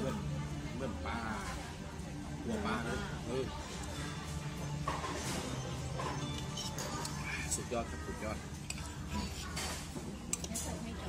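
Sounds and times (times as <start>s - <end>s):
cutlery clinking on dishes: 4.8s - 7.3s, 8.7s - 10.8s.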